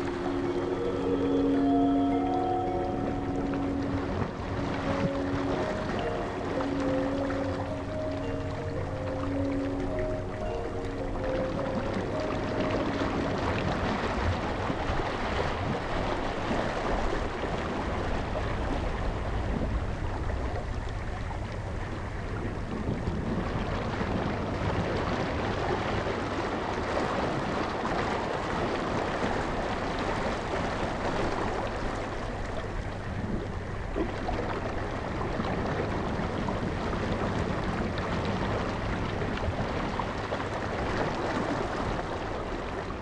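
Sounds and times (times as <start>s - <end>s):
wind blowing: 0.0s - 25.6s
rough sea water rushing: 0.0s - 43.0s.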